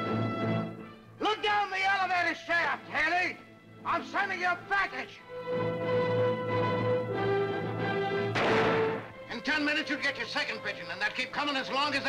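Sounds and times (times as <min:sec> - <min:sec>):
dramatic orchestral music: 0:05.3 - 0:11.0
loud crash: 0:08.4 - 0:09.1.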